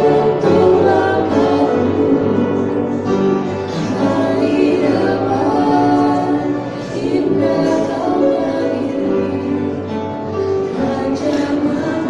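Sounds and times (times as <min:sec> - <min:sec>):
girls singing into microphones: 0:00.0 - 0:12.0.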